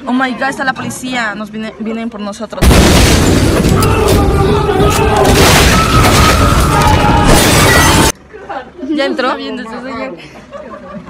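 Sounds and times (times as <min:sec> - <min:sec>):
loud crashing and smashing: 0:02.6 - 0:08.2.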